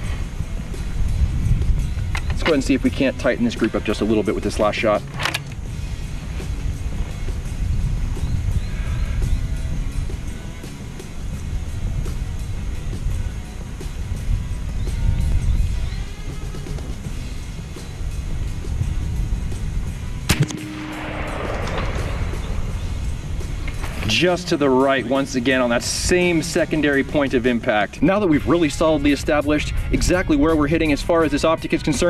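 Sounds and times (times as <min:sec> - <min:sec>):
steady low rumble: 0:17.5 - 0:25.2
air rifle shot: 0:20.3 - 0:24.1.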